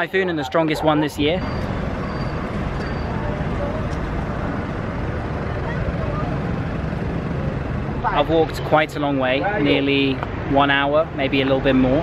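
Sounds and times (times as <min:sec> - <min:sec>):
steady rushing noise: 0:01.4 - 0:12.0.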